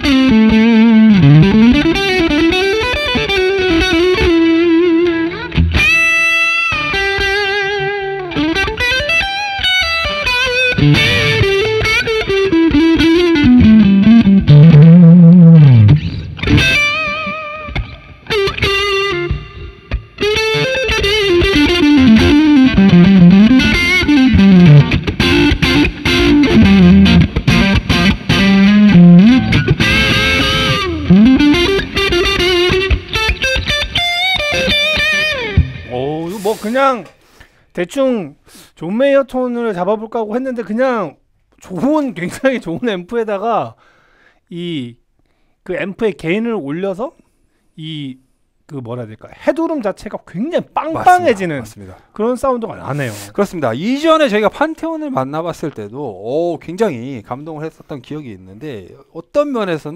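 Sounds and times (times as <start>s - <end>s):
overdriven electric guitar lead: 0.0s - 36.5s, 50.8s - 51.5s.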